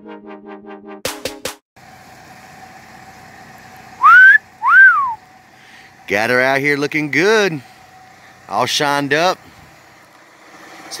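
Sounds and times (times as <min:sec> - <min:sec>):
wolf whistle: 0:04.0 - 0:05.2.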